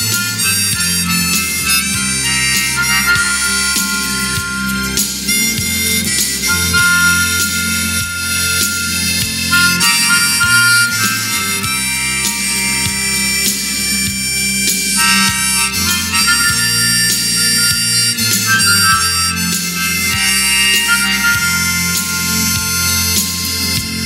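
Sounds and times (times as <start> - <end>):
harmonica solo: 0.0 - 24.0
low steady bass line: 0.0 - 24.0.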